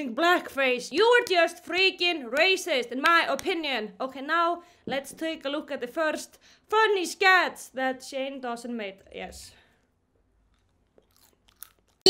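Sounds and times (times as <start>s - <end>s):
faint chewing: 10.2s - 12.0s.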